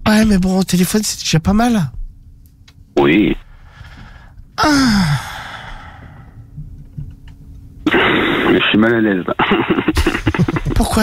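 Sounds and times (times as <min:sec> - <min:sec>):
person sighing laugh: 0:04.6 - 0:05.9.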